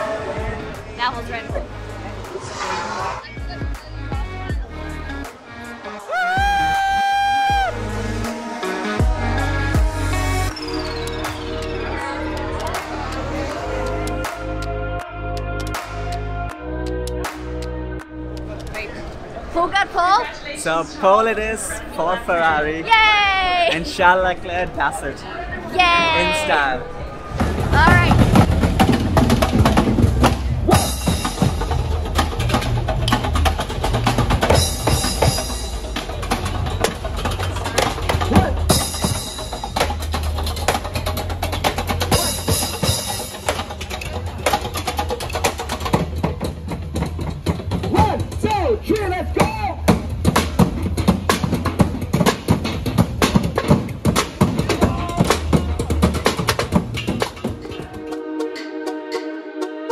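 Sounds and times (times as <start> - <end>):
group drumming busy rhythm: 27.6 - 58.2.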